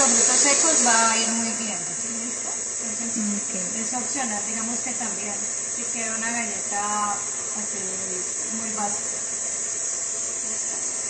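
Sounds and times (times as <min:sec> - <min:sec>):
stand mixer running: 0:00.0 - 0:11.0.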